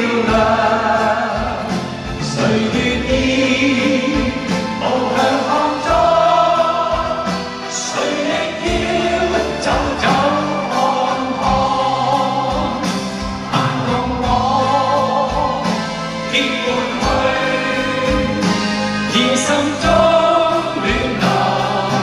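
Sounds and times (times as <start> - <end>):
man singing into a microphone: 0.0 - 7.1, 7.7 - 18.4, 19.1 - 22.0
band accompaniment with steady beat: 0.0 - 22.0.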